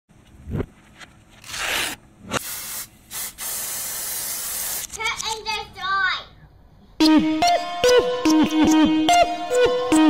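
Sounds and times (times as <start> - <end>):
spray can hissing: 2.3 - 5.2.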